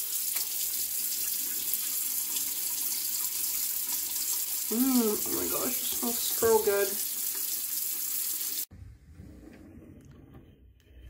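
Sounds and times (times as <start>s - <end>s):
tap water running into sink: 0.0s - 8.7s.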